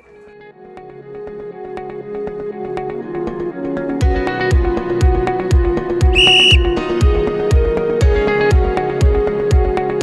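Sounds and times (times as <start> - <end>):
short whistle blast: 6.2 - 7.1.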